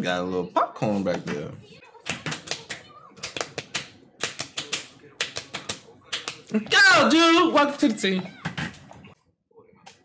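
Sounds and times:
rapid hand claps: 2.0 - 6.5.

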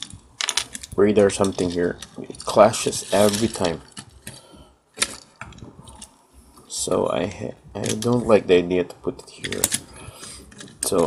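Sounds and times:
plastic toy parts clicking: 7.8 - 8.3, 9.4 - 11.0.

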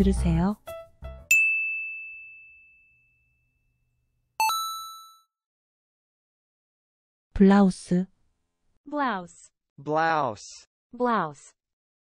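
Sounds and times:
ding chimes: 1.3 - 3.7, 4.4 - 5.3.

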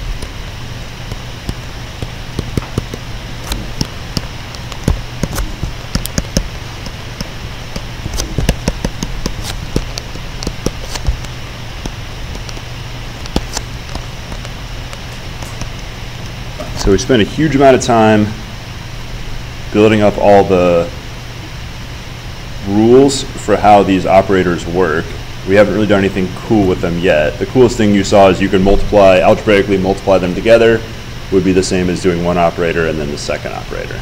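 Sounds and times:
background hiss: 0.0 - 34.0
low hum: 0.0 - 34.0
stylus tapping on tablet screen: 1.1 - 16.4.

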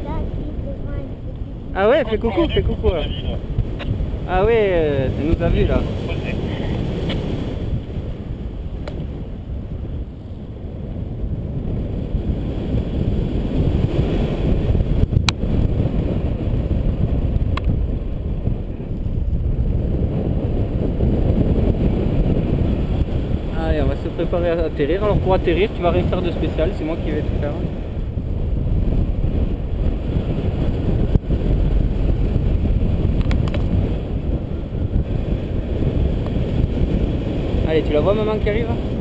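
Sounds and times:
wind rushing over microphone: 0.0 - 39.0.

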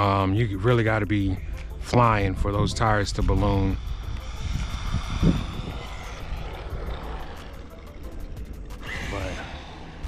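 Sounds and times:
rc car motor whine: 2.7 - 10.0
small tyres rumbling on asphalt: 2.8 - 10.0.

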